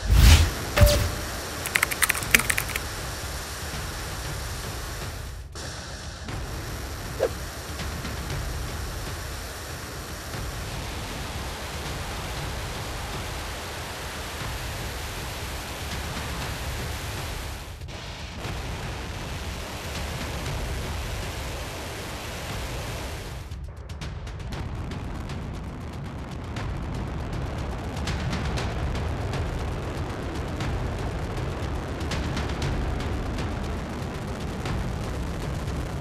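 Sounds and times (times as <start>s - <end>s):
sharp crackles: 0.8s - 2.8s.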